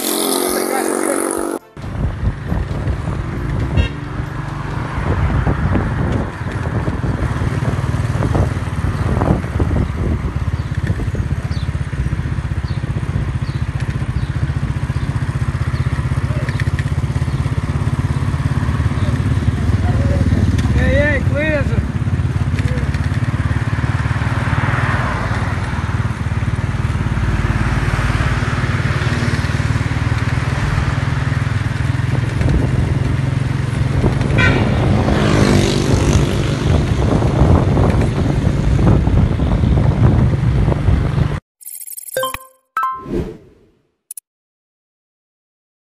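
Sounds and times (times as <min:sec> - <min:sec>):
vehicle engine rumble: 0:01.7 - 0:35.3.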